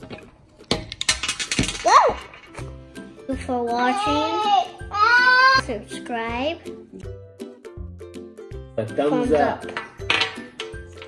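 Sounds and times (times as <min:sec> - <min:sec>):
plastic toy pieces clattering on glass: 0:00.7 - 0:02.6.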